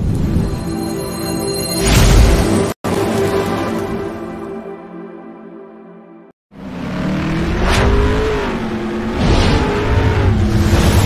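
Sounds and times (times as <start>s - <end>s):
car engine revving: 6.5s - 11.0s.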